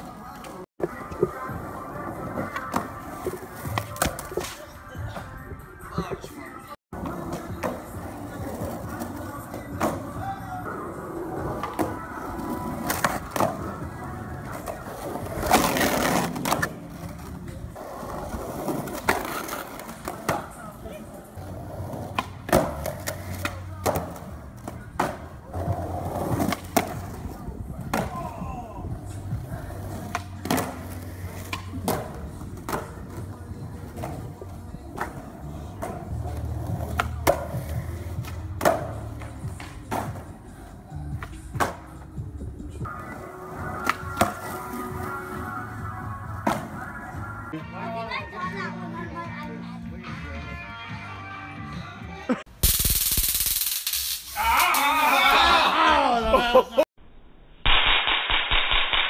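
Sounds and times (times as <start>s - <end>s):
skateboards clacking: 0.0s - 5.4s, 6.2s - 47.5s
skateboards rolling on asphalt: 0.0s - 49.5s
background music: 0.0s - 52.6s.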